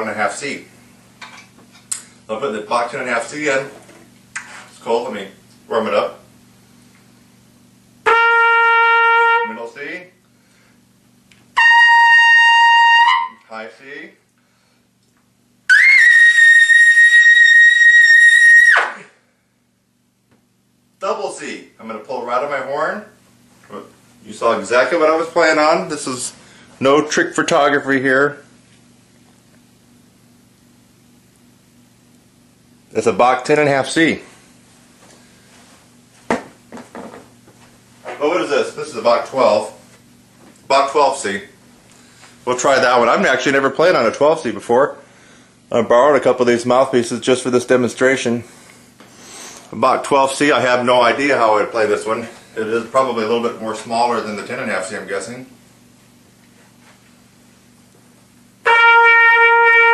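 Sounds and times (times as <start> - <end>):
faint steady hum: 0.0 - 59.9
trumpet held notes: 8.0 - 9.8, 11.6 - 13.5, 58.6 - 59.9.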